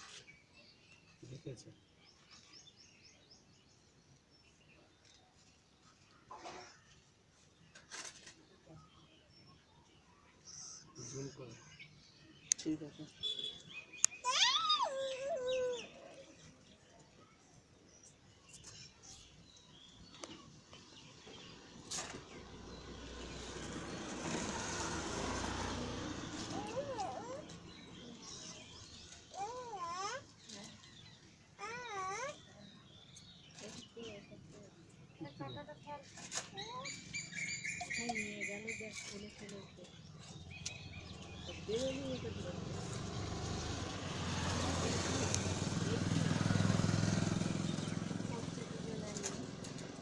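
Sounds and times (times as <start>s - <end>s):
vehicle passing by: 21.2s - 29.5s, 40.1s - 50.0s.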